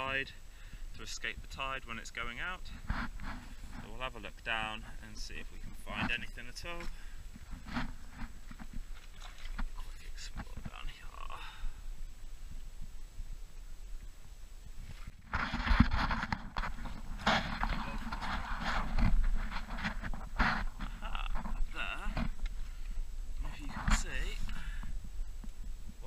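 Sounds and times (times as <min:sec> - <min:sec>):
water splashing by hand: 0:08.8 - 0:09.8.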